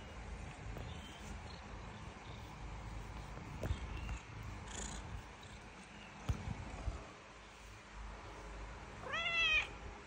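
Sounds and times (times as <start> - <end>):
cat purring: 0.7 - 7.1.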